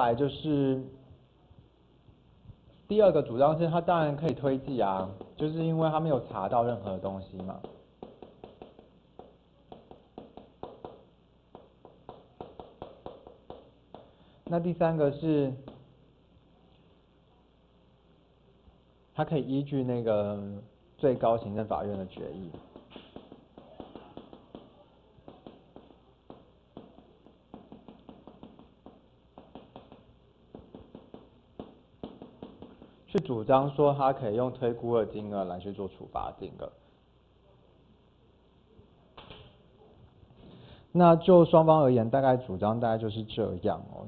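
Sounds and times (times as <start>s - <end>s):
chalk tapping on a blackboard: 7.3s - 14.6s, 21.9s - 33.2s.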